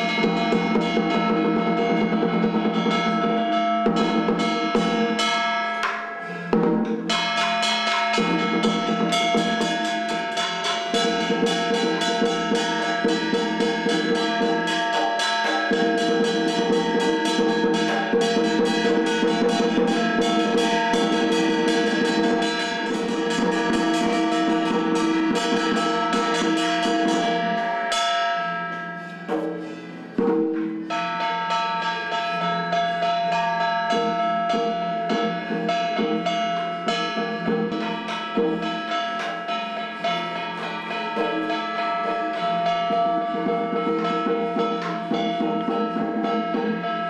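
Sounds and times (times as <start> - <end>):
fast drums and percussion: 0.0 - 47.0.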